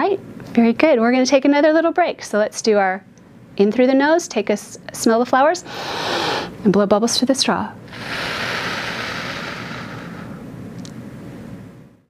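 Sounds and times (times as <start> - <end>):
woman exhaling slowly: 7.9 - 10.4.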